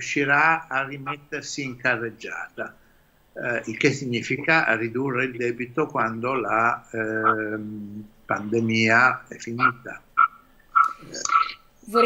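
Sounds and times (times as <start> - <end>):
person making hesitation sounds: 6.9 - 8.8, 9.4 - 10.0, 10.8 - 11.6.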